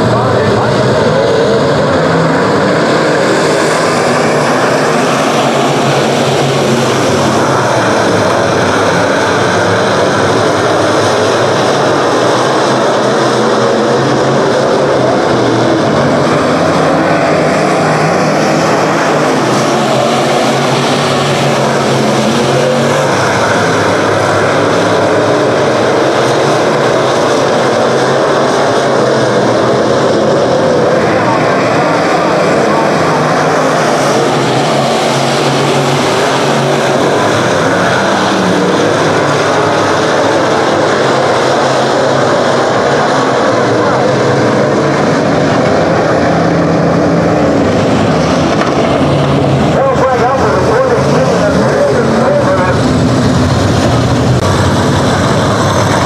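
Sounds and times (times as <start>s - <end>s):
race car engines: 0.0s - 56.0s.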